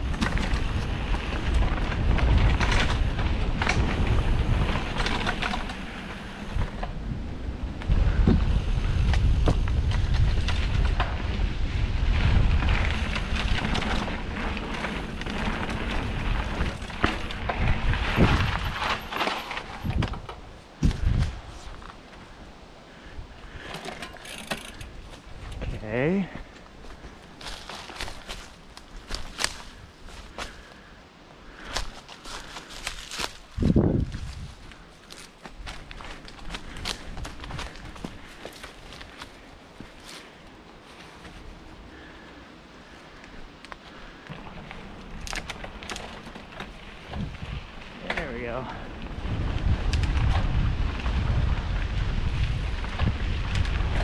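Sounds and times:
wind on microphone: 0.0s - 21.8s, 31.8s - 34.8s, 46.8s - 54.0s
bike tyres rumbling on dirt: 0.0s - 54.0s
rattle: 23.6s - 25.7s.

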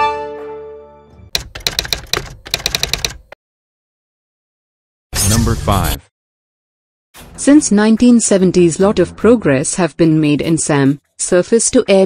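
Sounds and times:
typewriter key clacks: 1.4s - 3.2s.

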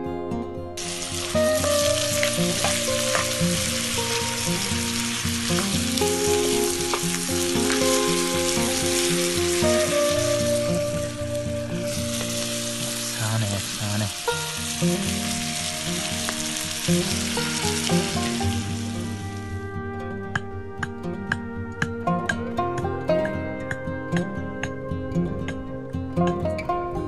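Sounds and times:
background music: 0.0s - 27.0s
meat sizzling in a frying pan: 0.8s - 19.4s.

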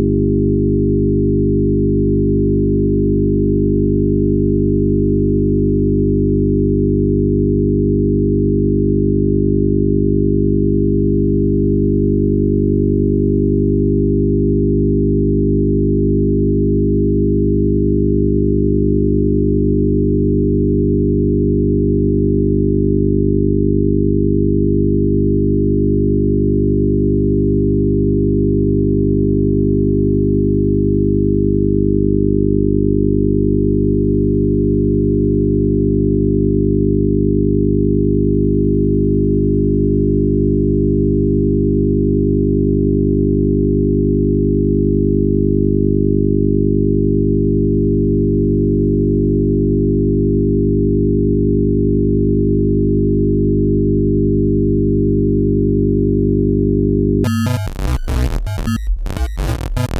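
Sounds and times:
electronic sine tone drone: 0.0s - 36.1s, 54.4s - 59.9s.

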